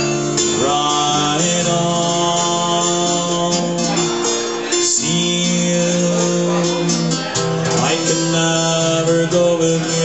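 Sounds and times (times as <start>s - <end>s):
acoustic guitar: 0.0s - 10.0s
man singing folk song: 0.0s - 10.0s.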